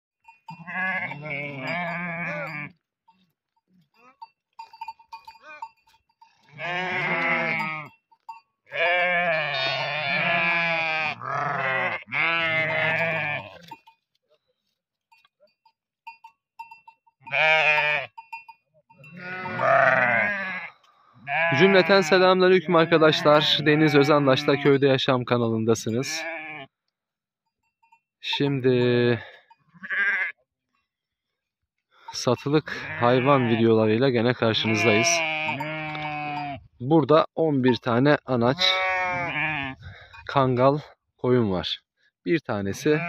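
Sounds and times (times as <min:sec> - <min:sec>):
sheep bleating: 0:00.5 - 0:02.8, 0:06.4 - 0:08.0, 0:08.7 - 0:13.8, 0:17.2 - 0:18.2, 0:19.0 - 0:24.8, 0:25.9 - 0:26.8, 0:29.2 - 0:30.4, 0:32.6 - 0:36.7, 0:38.4 - 0:40.2, 0:42.7 - 0:43.0.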